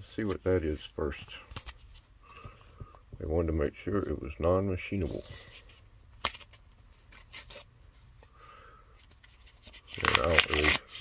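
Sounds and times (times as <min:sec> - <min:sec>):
man talking: 0:00.0 - 0:01.5, 0:03.2 - 0:05.4, 0:10.0 - 0:10.9
paper envelope rustling: 0:09.0 - 0:11.0.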